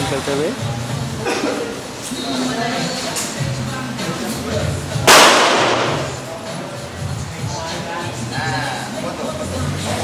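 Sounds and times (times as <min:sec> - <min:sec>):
pistol shot ringing: 0:05.1 - 0:06.1.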